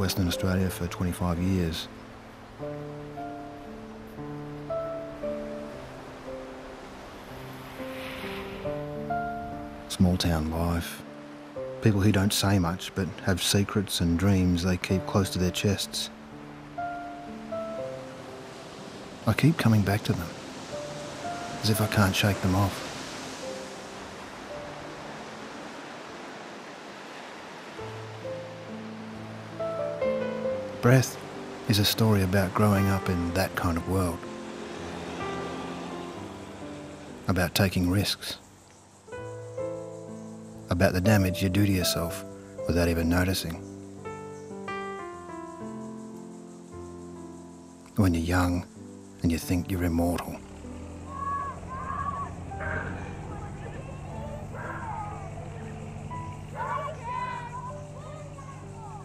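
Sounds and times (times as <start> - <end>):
soft background music: 0.0 - 59.0
surf crashing on rocky shore: 4.7 - 38.1, 50.5 - 59.0
deep sustained chord: 28.1 - 37.3, 50.0 - 59.0
short arching bird calls: 50.4 - 59.0.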